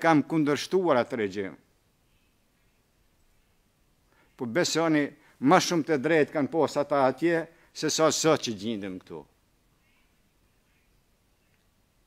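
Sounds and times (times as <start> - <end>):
man speaking: 0.0 - 1.6, 4.4 - 9.3.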